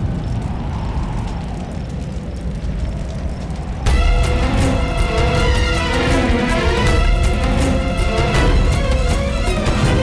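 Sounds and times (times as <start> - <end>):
music: 3.8 - 10.0.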